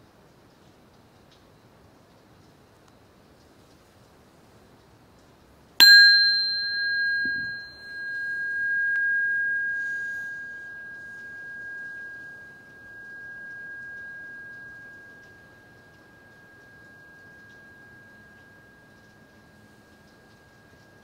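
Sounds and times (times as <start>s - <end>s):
singing bowl ringing: 5.8s - 21.0s.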